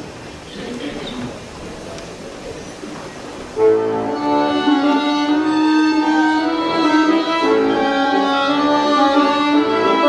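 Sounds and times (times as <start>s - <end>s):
accordion and violin chord: 3.6s - 10.0s.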